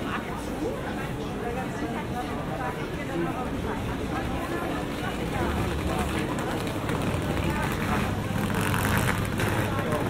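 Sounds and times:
passers-by talking indistinctly: 0:00.0 - 0:10.0.

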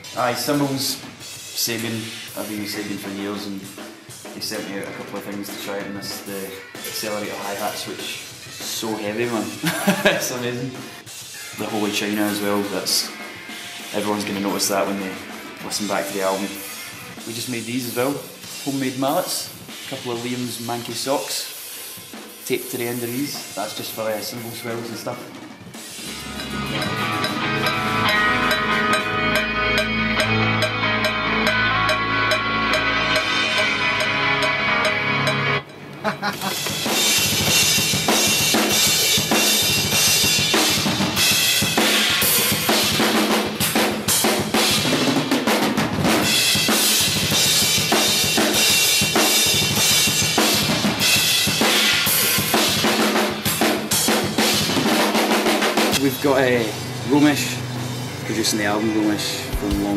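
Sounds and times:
heavy metal drum kit: 0:00.0 - 0:59.9
droning pitched tones: 0:25.9 - 0:36.3.

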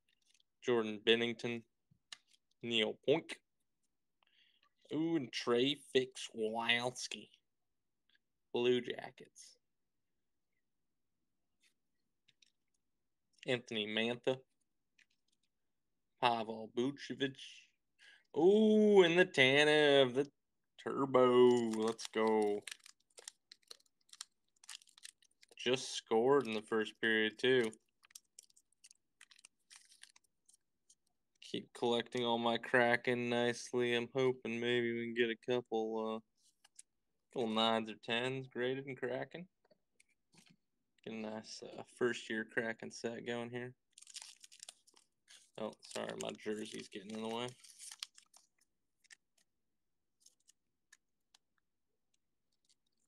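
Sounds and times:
trading cards and wrapper rustling: 0:21.0 - 0:32.1, 0:36.4 - 0:37.8, 0:43.9 - 0:53.0.

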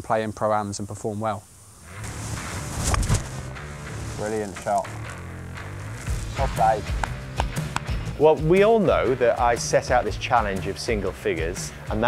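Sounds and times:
background music with low beat: 0:01.9 - 0:12.0.

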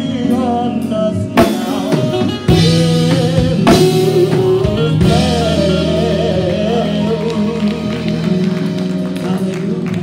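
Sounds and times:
live worship band playing: 0:00.0 - 0:10.0
person singing melody: 0:00.0 - 0:10.0
heavy drum strokes: 0:01.4 - 0:06.8.

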